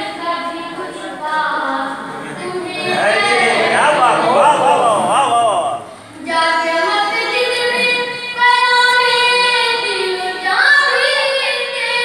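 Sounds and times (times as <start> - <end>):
boy singing into a microphone: 6.1 - 12.0.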